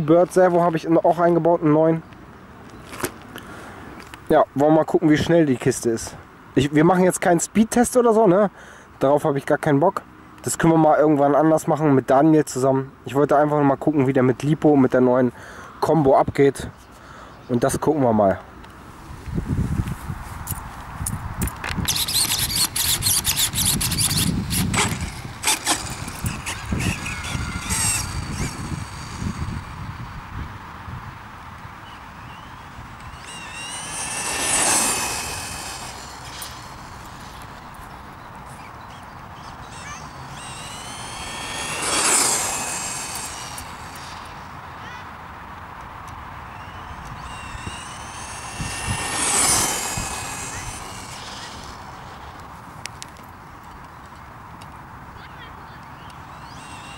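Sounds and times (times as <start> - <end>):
rc truck scrabbling and crunching: 2.6 - 4.3, 18.7 - 30.3, 31.6 - 45.1, 45.7 - 54.2, 55.8 - 56.9
electric motor and gear whine: 21.7 - 31.0, 31.6 - 44.8, 46.4 - 53.1, 55.9 - 56.9.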